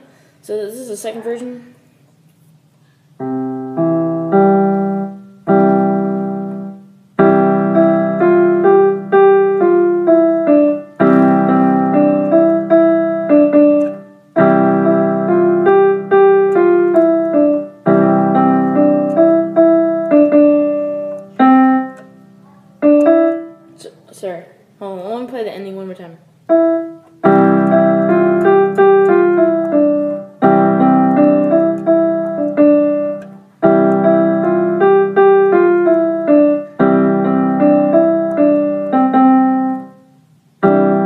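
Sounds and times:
piano piece: 0:03.0 - 0:24.4, 0:26.4 - 0:41.0.

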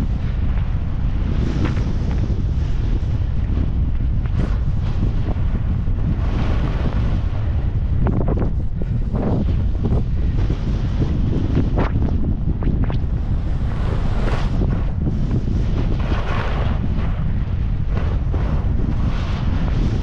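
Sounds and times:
wind buffeting microphone: 0:00.0 - 0:20.0
skis carving through snow: 0:00.2 - 0:12.2, 0:12.9 - 0:20.0.

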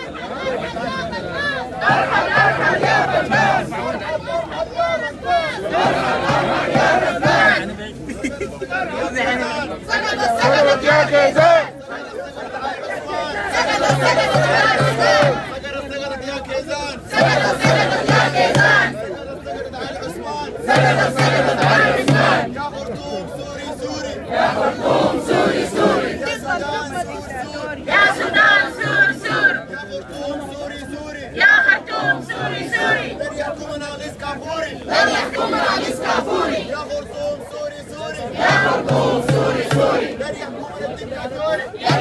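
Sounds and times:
crowd chanting: 0:00.0 - 0:08.0, 0:08.7 - 0:15.9, 0:16.9 - 0:42.0.

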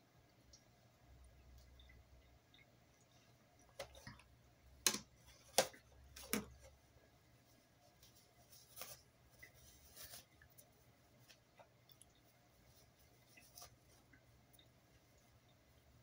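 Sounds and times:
soft rustling: 0:05.2 - 0:16.0.

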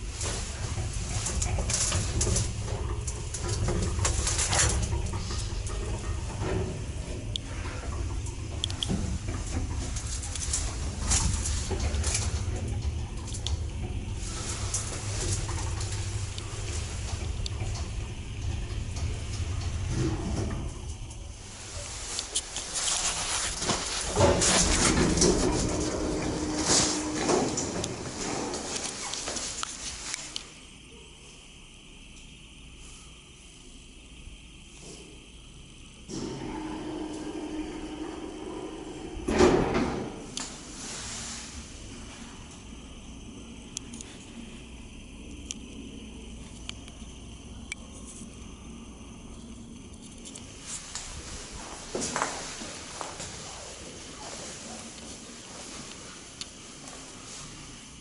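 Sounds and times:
lift low rumble: 0:00.0 - 0:58.0
steady hum: 0:00.0 - 0:58.0.

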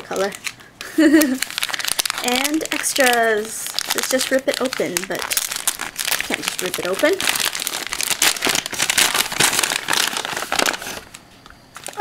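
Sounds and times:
paper and plastic crinkling: 0:00.0 - 0:12.0.

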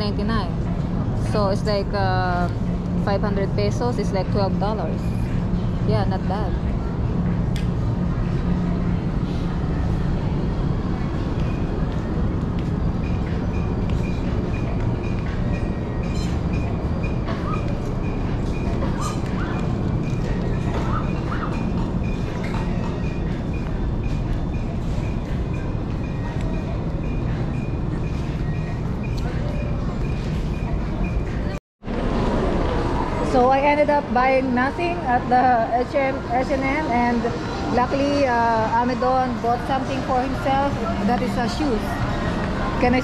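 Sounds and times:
faint background music: 0:00.0 - 0:43.0.

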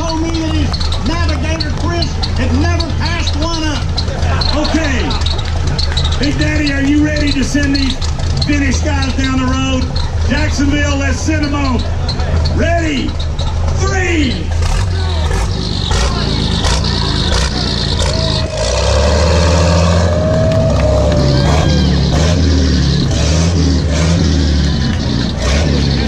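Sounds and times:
deep engine running: 0:00.0 - 0:26.0.

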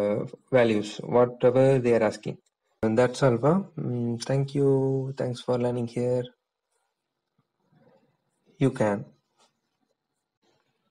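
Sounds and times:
person speaking: 0:00.0 - 0:06.3, 0:08.6 - 0:09.2.

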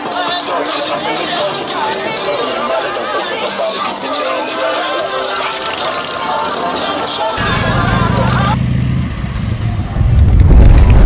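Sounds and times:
rap music with voices: 0:00.0 - 0:08.6
motorcycle engine rumble: 0:06.0 - 0:11.0.

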